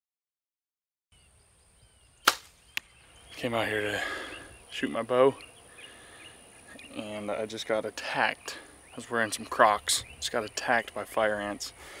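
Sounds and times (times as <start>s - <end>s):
faint birdsong: 1.1s - 12.0s
arrow striking target: 2.2s - 2.9s
bowstring release crack: 2.2s - 2.9s.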